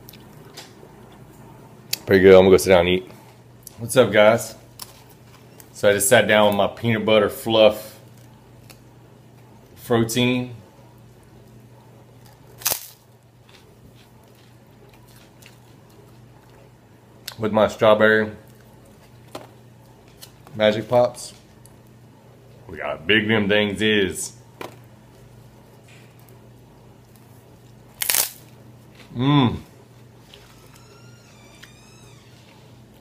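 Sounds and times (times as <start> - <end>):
crispy wafer crunching when bitten: 12.2 - 16.4, 27.9 - 29.2.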